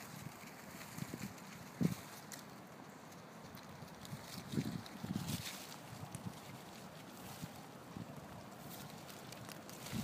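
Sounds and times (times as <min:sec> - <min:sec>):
dry leaves rustling: 0:00.0 - 0:10.0.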